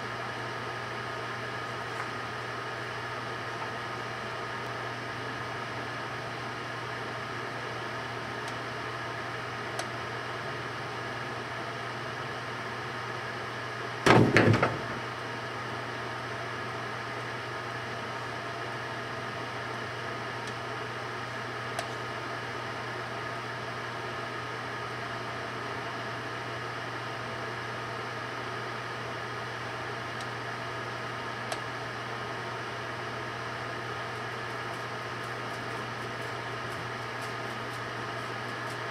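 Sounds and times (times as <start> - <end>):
microwave oven humming: 0.0 - 38.9.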